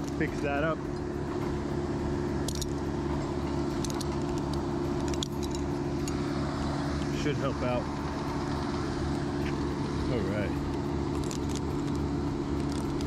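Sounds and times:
metal carabiners clinking: 0.0s - 1.6s, 2.4s - 6.3s, 10.6s - 13.0s
steady engine drone: 0.0s - 13.0s.

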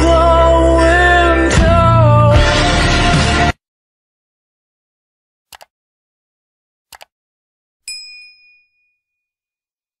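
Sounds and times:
bright bell chime: 7.9s - 9.3s.

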